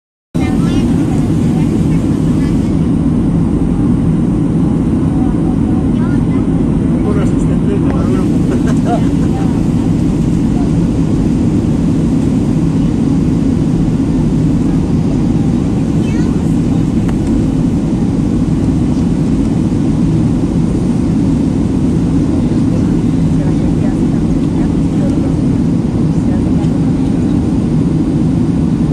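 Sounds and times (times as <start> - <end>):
airliner cabin engine rumble: 0.3 - 28.9.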